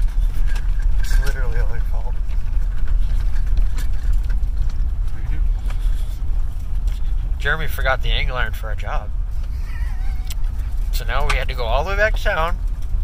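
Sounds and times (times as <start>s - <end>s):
vehicle rumble from inside cab: 0.0s - 13.0s.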